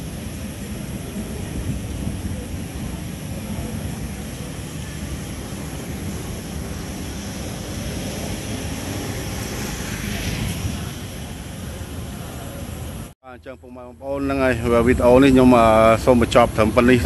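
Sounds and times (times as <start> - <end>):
vehicle passing: 0.0 - 13.1
low rumble of street traffic: 0.0 - 17.0.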